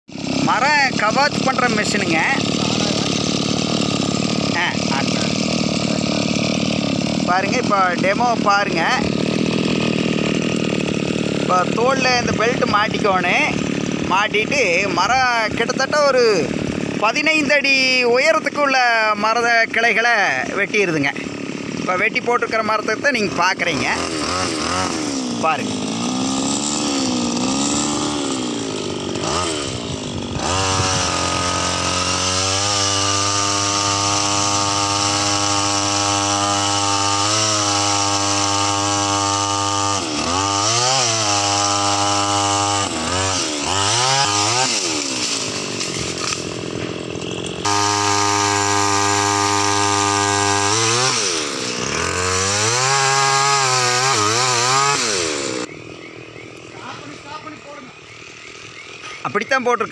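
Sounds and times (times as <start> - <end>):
pole saw engine revving: 0.1 - 59.9.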